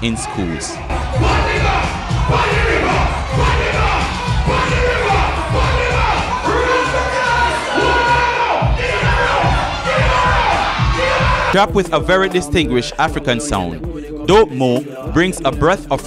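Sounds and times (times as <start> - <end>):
crowd shouting and cheering: 0.0 - 16.0
heavy steady beat: 0.0 - 16.0
man chanting into a microphone: 11.5 - 16.0.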